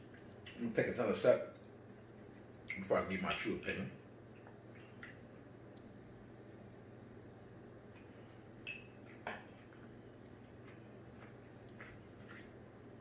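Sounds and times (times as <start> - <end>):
faint steady hum: 0.0 - 13.0.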